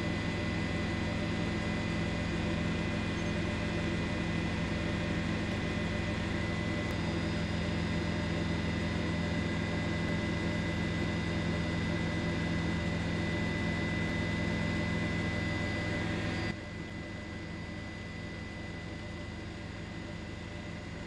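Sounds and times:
helicopter engine and rotor drone: 0.0 - 21.0.

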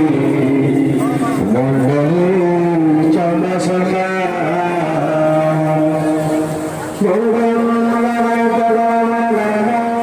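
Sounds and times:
devotional chanting: 0.0 - 10.0.

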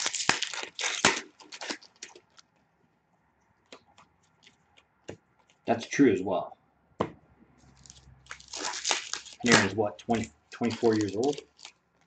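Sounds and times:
card pack wrapper crinkling: 0.0 - 2.6, 7.7 - 11.8.

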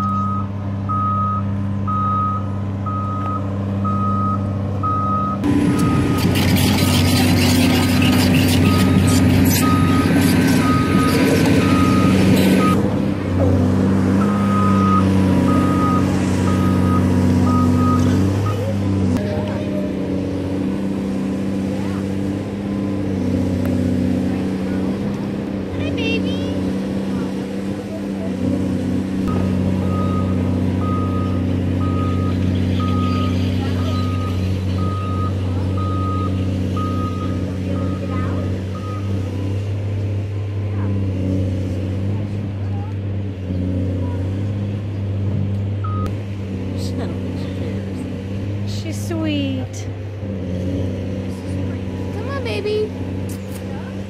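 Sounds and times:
reversing alarm beeping: 0.0 - 6.4, 8.6 - 12.8, 14.2 - 18.7, 29.3 - 39.2, 45.8 - 46.1
heavy machinery engine hum: 0.0 - 54.0.

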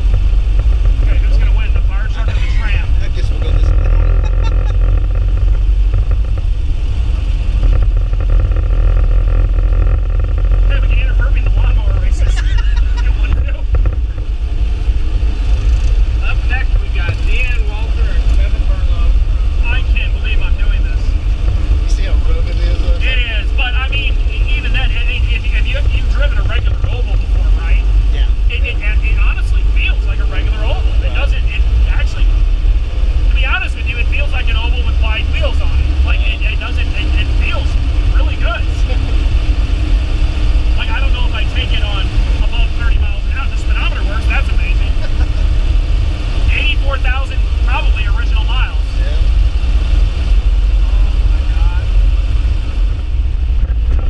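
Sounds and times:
car engine rumble inside cabin: 0.0 - 54.0
voices talking: 0.7 - 6.2, 10.6 - 49.4.

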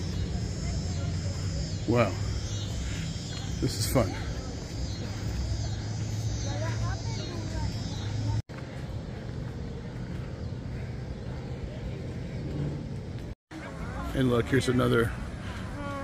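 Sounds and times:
steady low rumble: 0.0 - 13.4
faint voices: 0.0 - 16.0.

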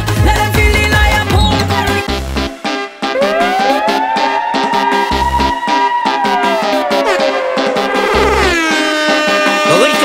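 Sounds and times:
soca dance music: 0.0 - 2.6.

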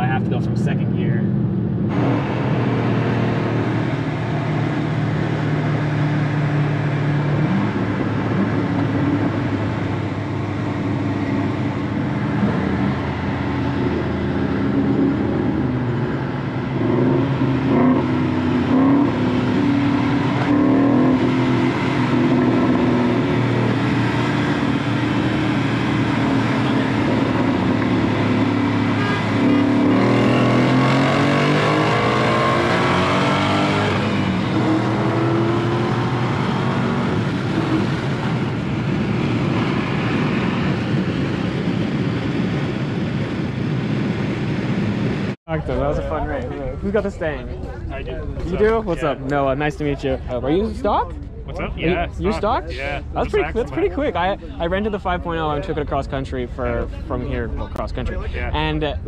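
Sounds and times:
car engine accelerating hard: 0.0 - 47.4.

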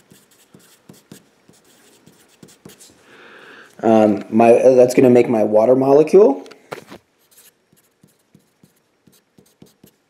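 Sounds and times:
pen writing on paper: 0.0 - 2.9, 7.2 - 10.0.

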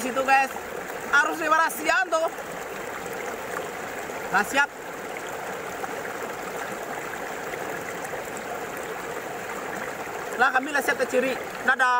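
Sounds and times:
stream flowing: 0.0 - 11.9.

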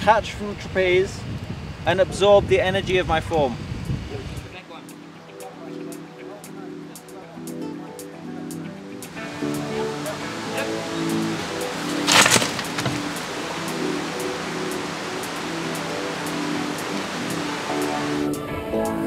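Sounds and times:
background music with held notes: 4.5 - 19.0
log dropping and being caught: 11.9 - 13.2.

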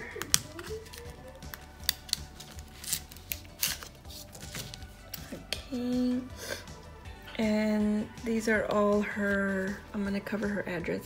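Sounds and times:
paper and card rustling: 0.0 - 5.4
faint background music: 0.0 - 11.0.

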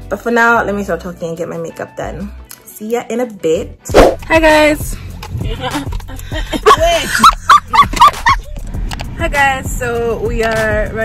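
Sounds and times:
woman laughing: 5.5 - 8.5.

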